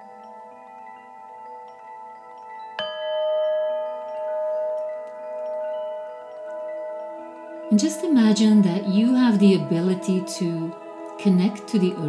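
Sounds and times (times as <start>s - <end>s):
chime struck and ringing: 0.0s - 10.1s
soft sustained chiming tones: 0.0s - 12.0s.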